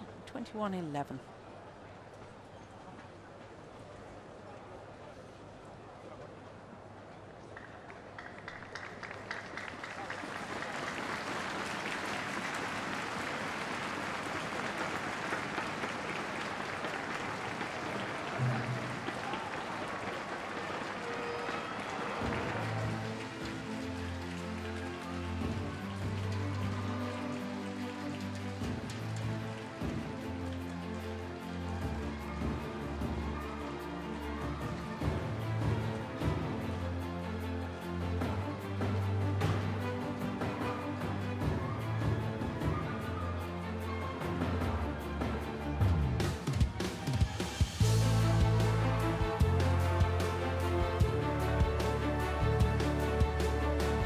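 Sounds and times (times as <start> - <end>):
crowd clapping: 7.4 - 32.6, 46.3 - 54.0.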